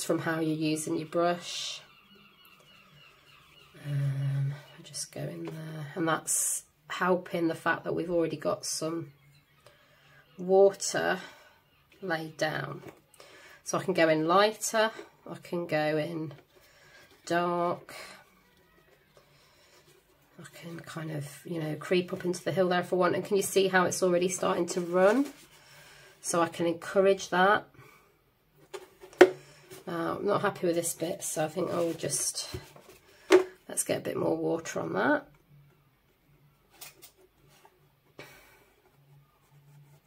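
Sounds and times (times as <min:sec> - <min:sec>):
brush dabbing wet paint on paper: 0:31.4 - 0:32.5.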